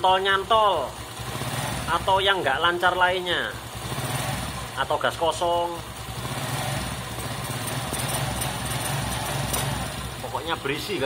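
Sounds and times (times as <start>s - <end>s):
scooter engine idling: 0.0s - 11.0s.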